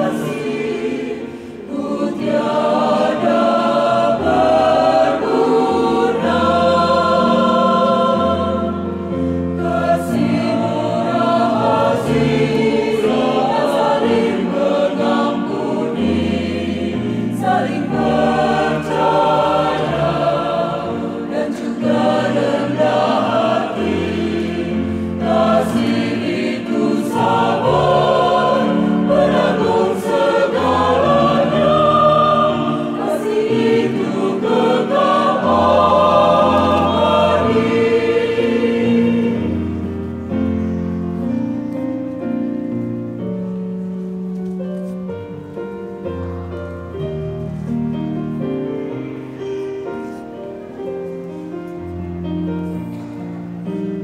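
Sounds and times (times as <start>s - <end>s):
mixed choir singing: 0.0s - 41.5s.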